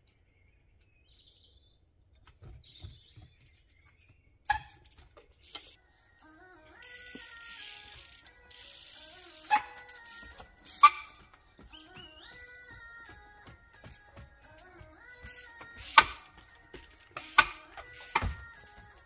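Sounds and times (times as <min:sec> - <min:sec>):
bike tyres knocking on wood: 0:02.2 - 0:03.4, 0:13.4 - 0:19.0
freewheel ratchet buzzing: 0:02.6 - 0:05.8, 0:06.8 - 0:11.4, 0:13.8 - 0:19.0.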